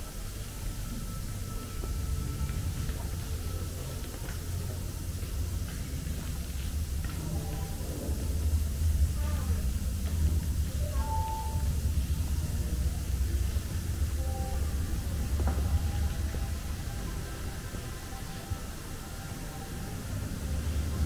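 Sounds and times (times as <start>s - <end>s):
steady low rumble: 0.0s - 21.0s
visitors' voices: 0.0s - 21.0s.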